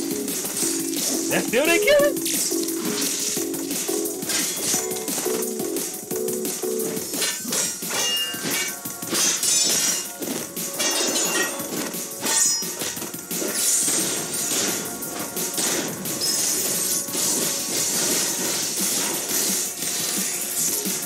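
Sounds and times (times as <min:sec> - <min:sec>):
fast soundtrack music: 0:00.0 - 0:21.0
sword blades clashing: 0:07.1 - 0:20.9.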